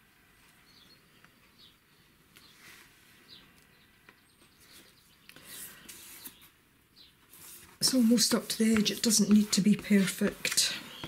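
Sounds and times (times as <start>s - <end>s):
bird chirps: 0.6s - 1.8s, 10.7s - 11.0s
hand smoothing paper: 4.7s - 6.5s, 7.3s - 11.0s
palette knife scraping on wood: 7.4s - 10.7s.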